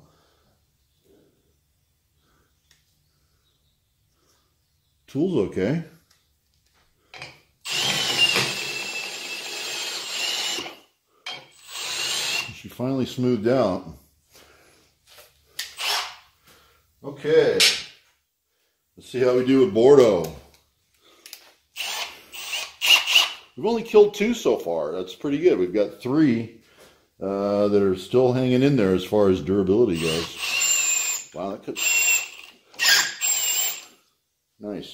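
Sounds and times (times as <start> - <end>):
drill cutting steel with high squeal: 7.7 - 12.5, 21.8 - 23.4, 30.0 - 34.0.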